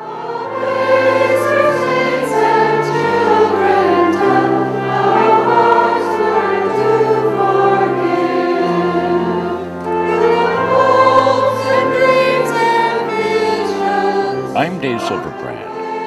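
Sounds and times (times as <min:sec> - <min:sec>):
congregation singing a hymn: 0:00.0 - 0:16.0
held bass notes: 0:14.6 - 0:15.7.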